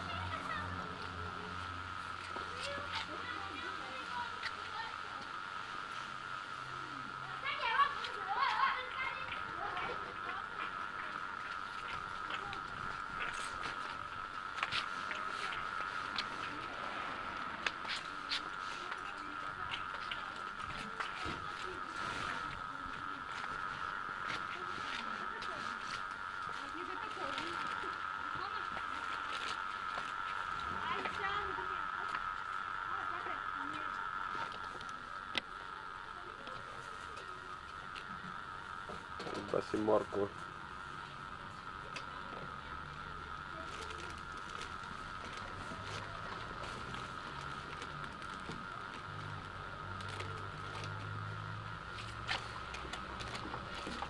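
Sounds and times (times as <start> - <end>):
indistinct voices: 0.0 - 54.0
steady high-pitched hum: 0.0 - 54.0.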